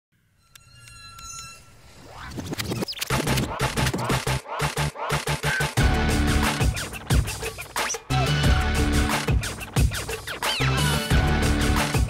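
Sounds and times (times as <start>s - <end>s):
thin high ringing tones: 0.2s - 2.5s.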